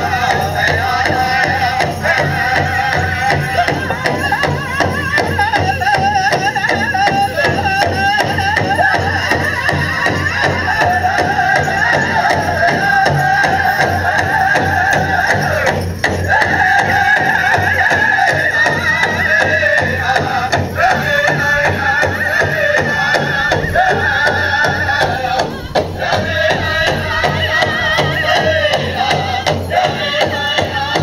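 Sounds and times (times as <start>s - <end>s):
big drum steady beat: 0.0s - 31.0s
group singing high voices: 0.0s - 31.0s.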